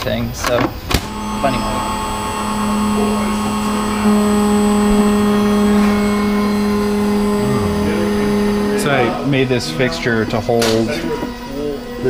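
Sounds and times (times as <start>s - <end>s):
mill spindle whine: 0.7s - 12.0s
higher tone: 1.0s - 10.6s.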